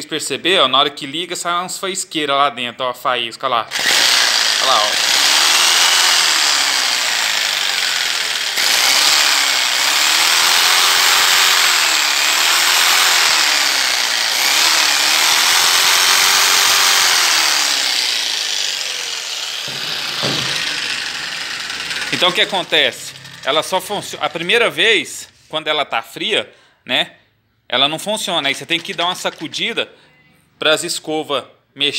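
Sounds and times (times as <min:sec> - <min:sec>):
jigsaw motor running unevenly: 0:03.7 - 0:24.4, 0:28.5 - 0:29.5.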